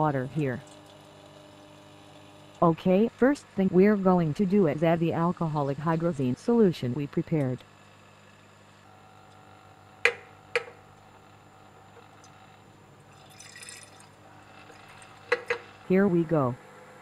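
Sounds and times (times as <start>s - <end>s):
liquid pouring: 13.1s - 15.6s.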